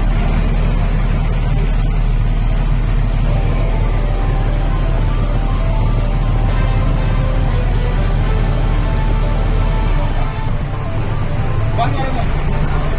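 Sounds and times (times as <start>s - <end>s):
bus engine rumbling: 0.0s - 12.9s
music playing: 0.0s - 12.9s.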